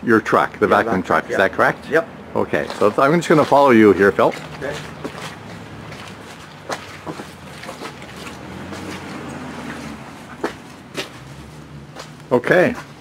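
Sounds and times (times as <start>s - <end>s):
boot footsteps on wet ground: 2.5s - 13.0s.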